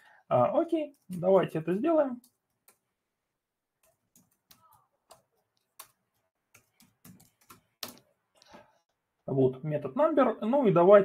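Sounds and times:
typing on computer keyboard: 3.8s - 8.1s.

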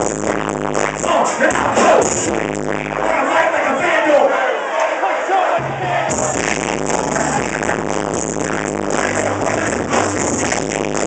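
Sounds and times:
bass beat: 0.0s - 4.0s, 5.6s - 11.0s
crowd shouting and cheering: 1.0s - 10.4s.

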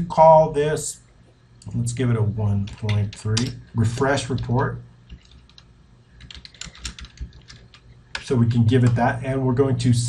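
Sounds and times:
typing on computer keyboard: 5.1s - 8.2s.

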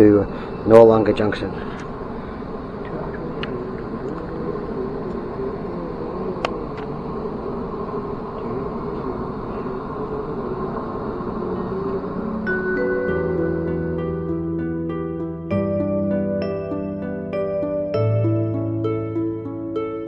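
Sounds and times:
train carriage rumble: 0.0s - 12.9s
faint steady hum: 0.0s - 20.0s.

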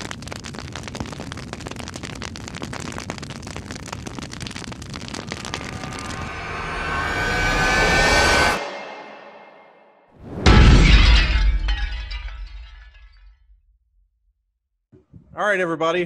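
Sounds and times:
fire crackling: 0.0s - 7.8s
rising swell: 5.2s - 10.4s.

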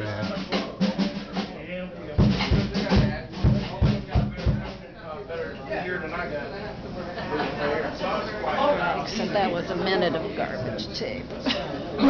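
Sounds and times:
drum kit hits: 0.0s - 4.9s.

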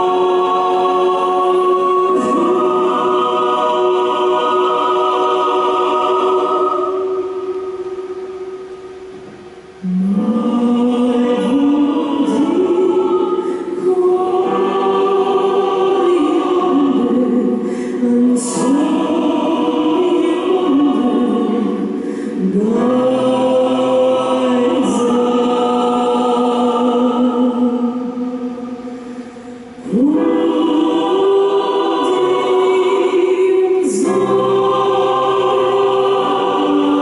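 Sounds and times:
choir singing: 0.0s - 9.0s, 9.7s - 37.0s.

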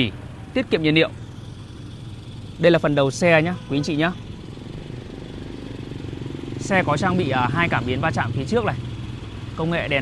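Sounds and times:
vehicle engine idling: 0.0s - 10.0s.

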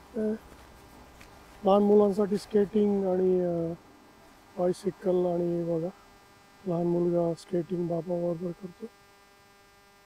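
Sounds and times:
faint electrical hum: 0.0s - 10.0s
man's voice: 0.2s - 0.4s, 1.6s - 3.8s, 4.6s - 6.0s, 6.7s - 8.9s.

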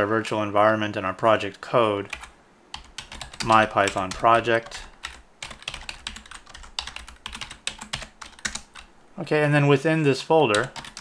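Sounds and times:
computer keyboard typing: 2.0s - 8.9s, 10.5s - 11.0s.

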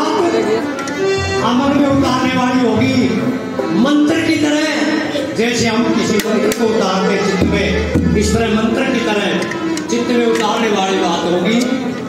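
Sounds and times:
dholak drum strokes: 0.0s - 10.7s
harmonium playing: 0.0s - 12.0s.

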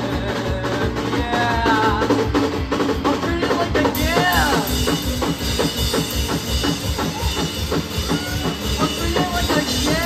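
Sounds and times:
drum kit beat: 0.0s - 10.0s
electric guitar sliding notes: 0.0s - 10.0s
rock band playing: 0.0s - 10.0s.

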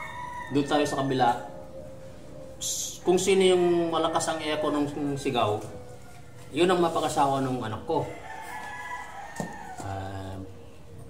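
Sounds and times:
rooster crowing: 0.0s - 2.5s, 3.8s - 10.7s
people talking: 0.5s - 1.5s, 2.6s - 5.7s, 6.5s - 8.1s, 9.8s - 10.5s.

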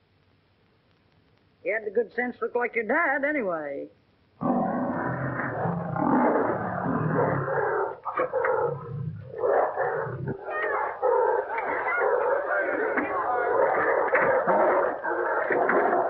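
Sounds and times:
big cats growling and roaring: 4.4s - 16.0s.

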